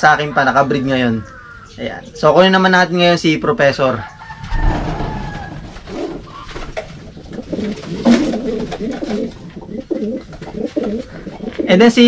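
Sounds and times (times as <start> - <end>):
pigeons cooing: 4.0 - 12.0.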